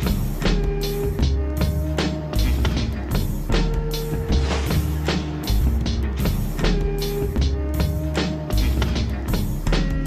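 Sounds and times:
intro music with deep bass: 0:00.0 - 0:10.0.

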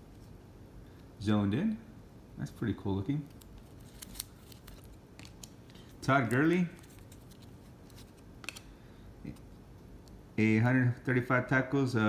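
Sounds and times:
trading cards shuffling: 0:03.2 - 0:08.7.

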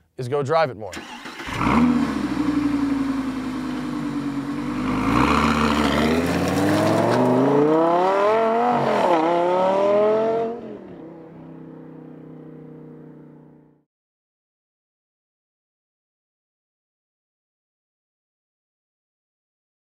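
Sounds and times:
sports car accelerating hard: 0:01.4 - 0:13.8.

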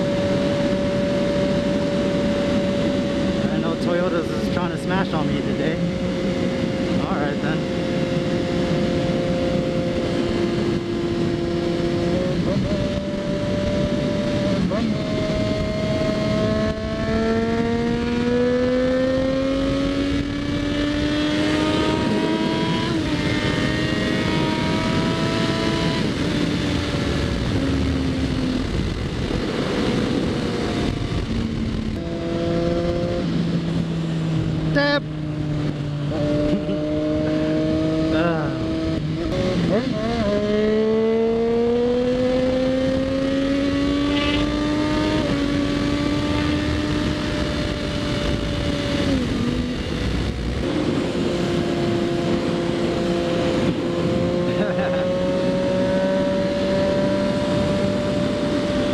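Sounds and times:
motorcycle engine accelerating: 0:00.0 - 0:58.9.

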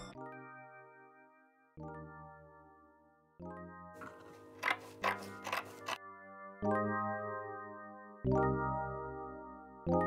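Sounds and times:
scissors snipping fabric: 0:04.0 - 0:06.0.

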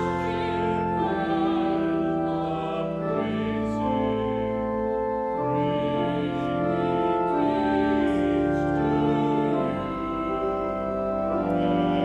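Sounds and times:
congregation and choir singing hymn: 0:00.0 - 0:12.0
keyboard accompaniment: 0:00.0 - 0:12.0.

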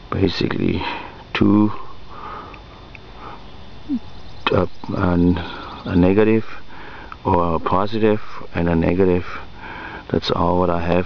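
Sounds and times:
man breathing: 0:00.8 - 0:03.5, 0:06.5 - 0:07.2, 0:09.2 - 0:10.1.

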